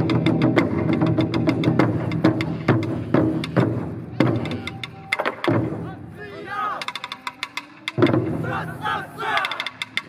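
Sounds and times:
taiko drums struck hard: 0.0 - 5.9, 7.8 - 8.7
performers shouting: 5.8 - 7.0, 8.4 - 9.8.

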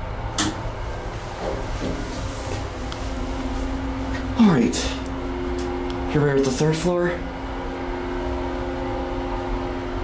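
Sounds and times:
elevator hum: 0.0 - 10.0
person speaking: 4.3 - 5.1, 6.0 - 7.3.

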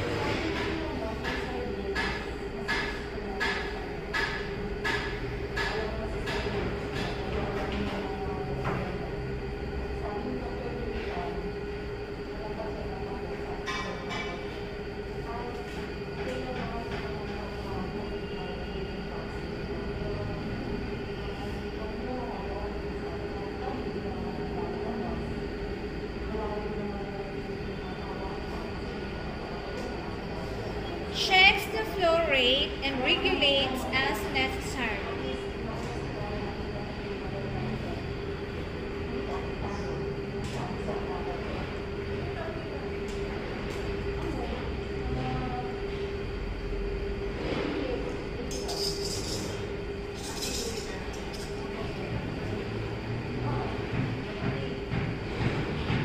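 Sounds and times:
faint murmur of voices: 0.0 - 56.0
steady mechanical hum: 0.0 - 56.0.

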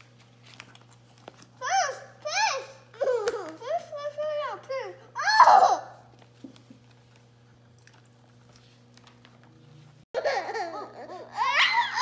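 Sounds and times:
book pages turning: 0.0 - 1.6, 8.2 - 9.9.

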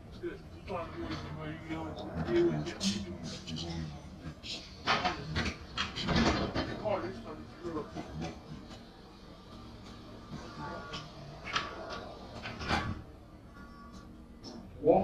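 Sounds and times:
bus interior drone: 0.0 - 15.0
low-pitched voices talking: 0.0 - 15.0.

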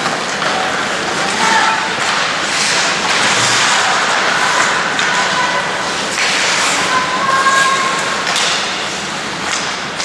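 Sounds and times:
hockey sticks and puck clacking: 0.0 - 5.5, 6.1 - 7.0, 7.6 - 10.0
rink background noise: 0.4 - 7.4
skates scraping ice: 2.0 - 6.9.

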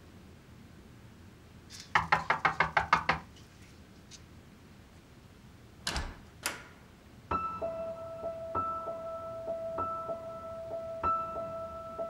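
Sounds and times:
knuckles knocking on door: 1.9 - 3.3.

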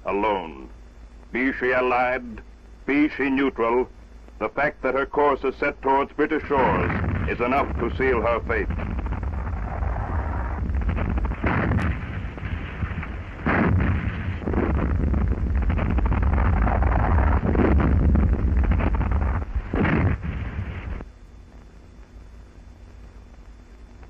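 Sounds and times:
shells bursting: 6.4 - 21.0.

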